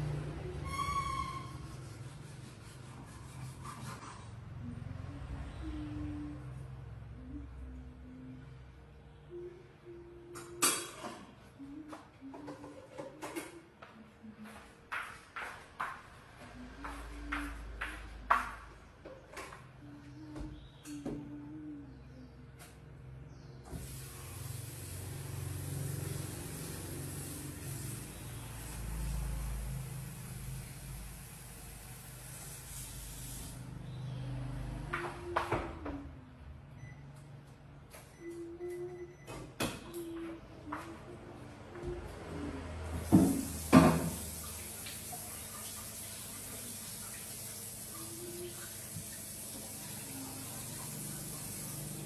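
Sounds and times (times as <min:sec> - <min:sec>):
dishes being scrubbed: 0:01.5 - 0:04.4
tap water running into sink: 0:43.0 - 0:52.0.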